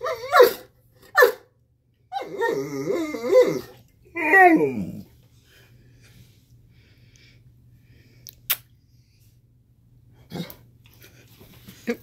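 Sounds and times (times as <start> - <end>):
dogs barking: 0.0 - 1.4
dog growling: 2.2 - 5.1.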